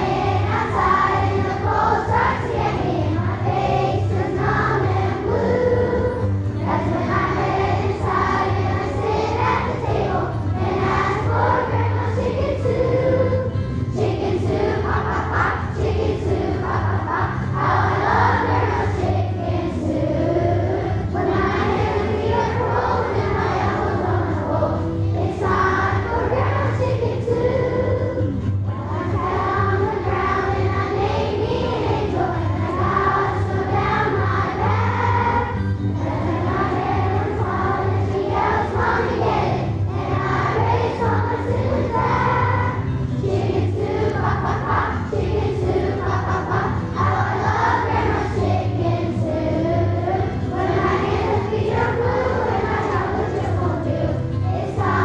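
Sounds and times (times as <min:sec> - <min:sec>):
children's choir singing: 0:00.0 - 0:55.0
instrumental accompaniment with bass: 0:00.0 - 0:55.0.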